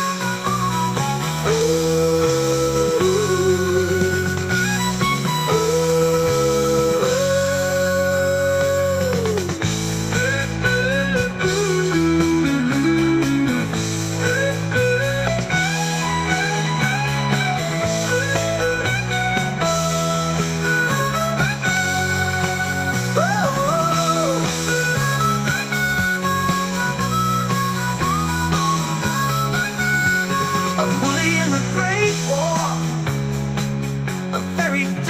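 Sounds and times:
chord and bass backing: 0:00.0 - 0:35.0
rock guitar lead melody: 0:00.0 - 0:35.0.

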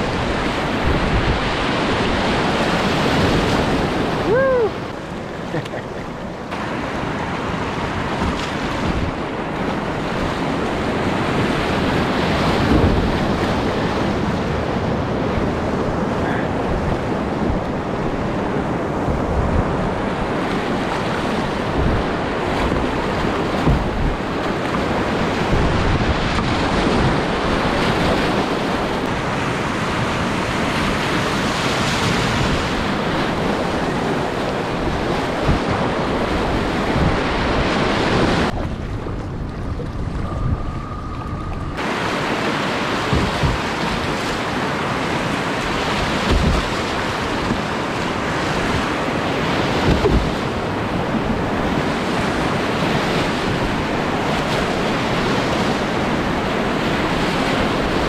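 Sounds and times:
river rapids roaring: 0:00.0 - 0:58.0
wind buffeting microphone: 0:00.0 - 0:58.0
low thumps: 0:43.1 - 0:43.7.

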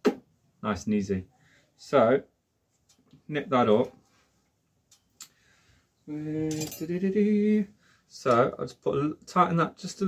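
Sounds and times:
man humming: 0:06.1 - 0:07.6.

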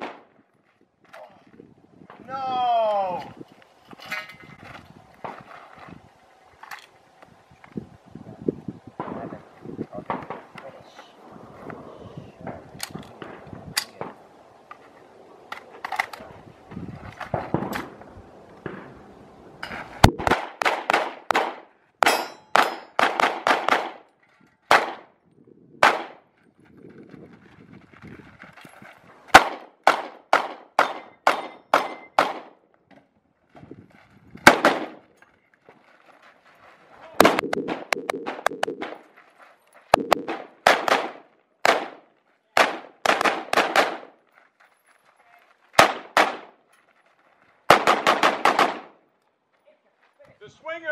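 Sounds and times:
gunshots: 0:20.0 - 0:24.0, 0:24.7 - 0:25.1, 0:25.8 - 0:26.2, 0:29.3 - 0:32.6, 0:34.4 - 0:35.0, 0:37.2 - 0:39.0, 0:39.9 - 0:44.2, 0:45.8 - 0:46.6, 0:47.7 - 0:49.0.

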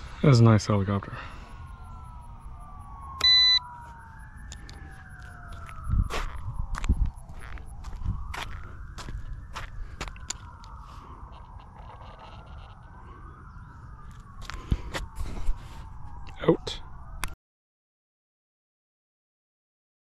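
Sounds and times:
siren wailing: 0:00.0 - 0:17.4
loud electronic beep: 0:01.7 - 0:03.7
footsteps on asphalt: 0:03.7 - 0:11.0, 0:14.0 - 0:15.9.

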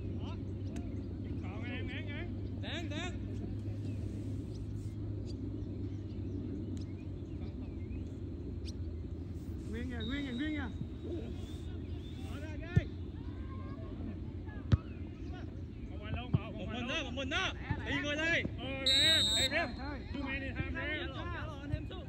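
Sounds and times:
steady low rumble: 0:00.0 - 0:16.2
distant players calling out: 0:09.6 - 0:15.5, 0:18.7 - 0:21.9.

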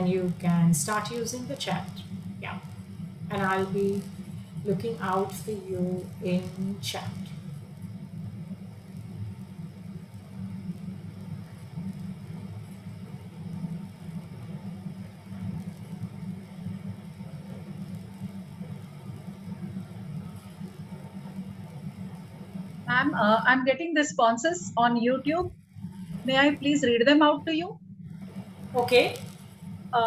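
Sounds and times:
low background rumble: 0:00.0 - 0:30.0.

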